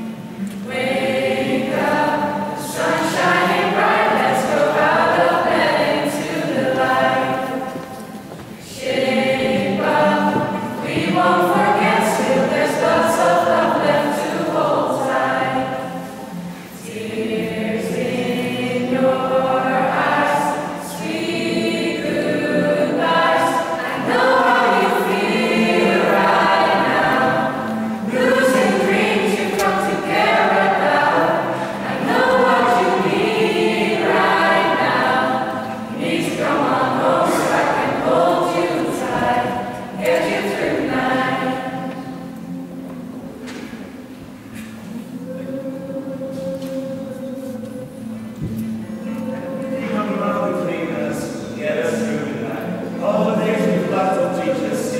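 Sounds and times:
group singing together: 0:00.0 - 0:54.9.

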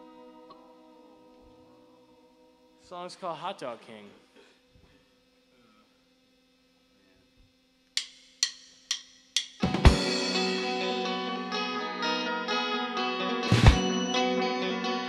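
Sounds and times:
faint amplifier hum: 0:00.0 - 0:15.0
drumstick clicks: 0:08.0 - 0:09.6
rock band playing: 0:09.5 - 0:15.0.

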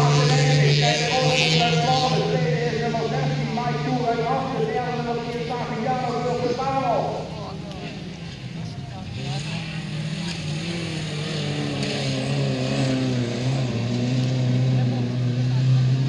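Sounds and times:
race car engines running hard: 0:00.0 - 0:16.0.

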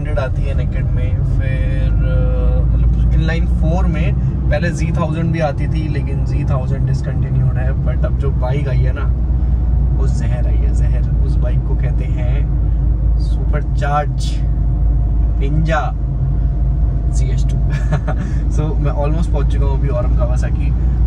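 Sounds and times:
man talking: 0:00.0 - 0:09.2, 0:09.9 - 0:12.5, 0:13.2 - 0:14.5, 0:15.4 - 0:16.0, 0:17.1 - 0:20.8
car engine and tyres rumbling: 0:00.0 - 0:21.0.

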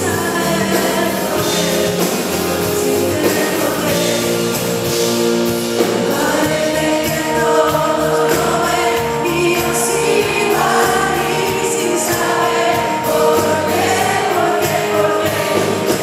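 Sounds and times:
crowd singing along: 0:00.0 - 0:16.0
live band playing: 0:00.0 - 0:16.0.

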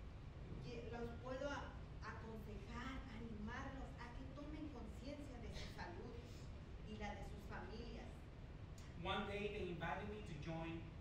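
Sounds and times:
woman talking into a microphone: 0:00.6 - 0:08.3.

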